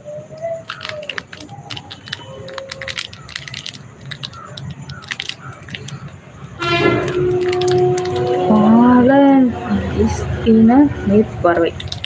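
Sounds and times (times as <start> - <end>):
hands handling small object: 0.4 - 8.4, 11.8 - 12.0.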